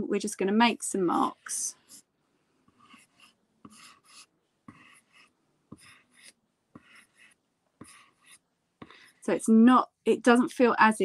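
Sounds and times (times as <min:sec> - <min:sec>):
pencil scratching on paper: 0:00.7 - 0:09.4.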